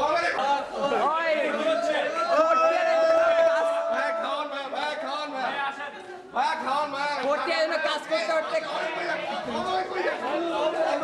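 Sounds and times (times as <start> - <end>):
voices chattering: 0.0 - 11.0.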